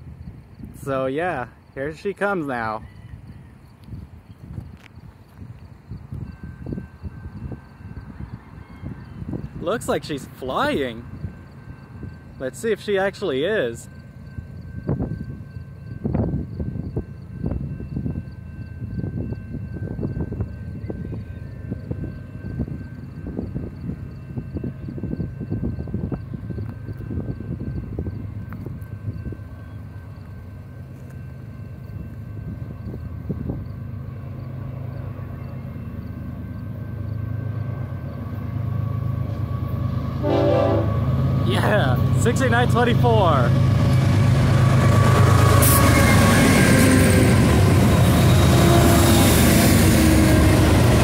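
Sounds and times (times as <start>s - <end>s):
diesel locomotives rumbling: 0.0s - 51.0s.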